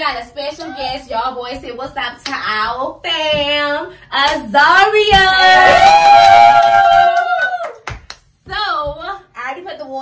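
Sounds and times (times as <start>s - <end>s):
high voice woo cheer: 5.2s - 7.8s
sharp hand clap: 6.0s - 8.3s.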